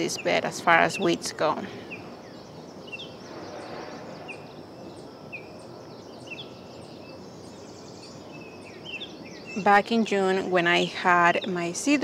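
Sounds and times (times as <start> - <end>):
bird chirping: 0.0 - 12.0
steady background hiss: 0.0 - 12.0.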